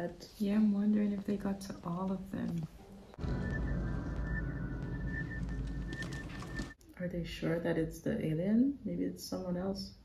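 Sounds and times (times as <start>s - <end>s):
low rumble: 3.1s - 6.8s
high electronic tone: 3.2s - 6.8s.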